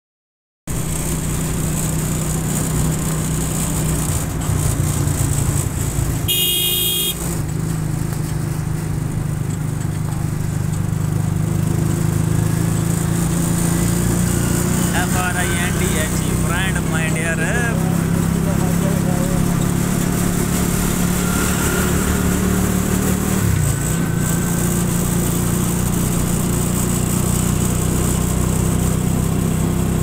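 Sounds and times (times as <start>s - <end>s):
motorcycle engine running: 0.7s - 30.0s
wind and road noise: 0.7s - 30.0s
vehicle horn: 6.3s - 7.4s.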